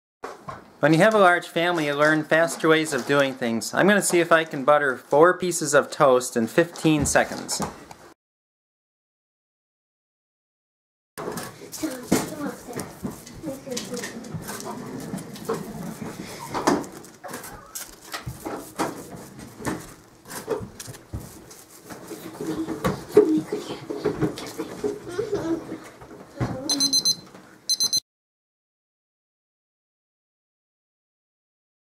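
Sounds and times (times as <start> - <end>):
kitchen timer beeping: 26.7 - 28.0.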